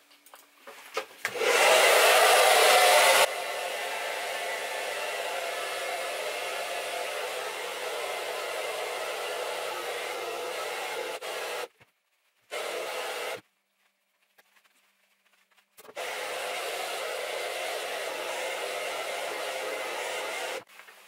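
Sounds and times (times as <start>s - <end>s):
hair dryer blowing: 1.3s - 11.7s, 12.5s - 13.4s, 15.9s - 20.7s.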